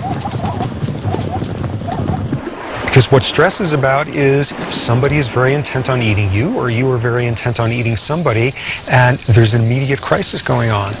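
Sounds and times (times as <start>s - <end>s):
galloping hoofbeats: 0.0s - 2.9s.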